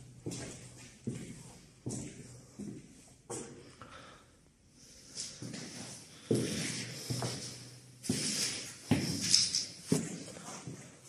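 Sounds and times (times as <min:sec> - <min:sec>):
footsteps on concrete floor: 0:00.0 - 0:03.8, 0:05.1 - 0:11.0.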